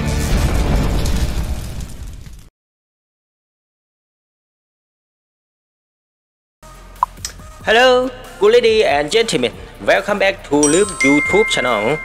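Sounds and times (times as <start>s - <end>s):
fiery explosion burst: 0.2s - 2.5s.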